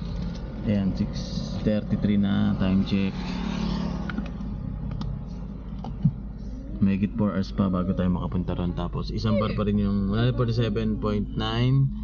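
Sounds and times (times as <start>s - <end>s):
car engine low hum: 0.0s - 12.0s
road and tyre noise: 0.0s - 12.0s.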